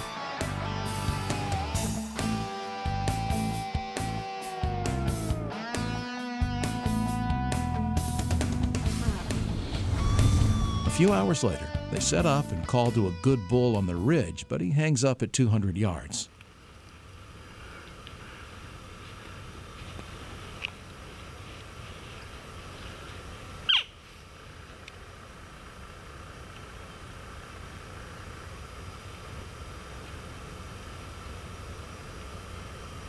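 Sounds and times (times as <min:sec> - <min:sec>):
low outdoor hiss: 0:00.0 - 0:07.2, 0:08.3 - 0:33.0
short high note: 0:08.9 - 0:11.7.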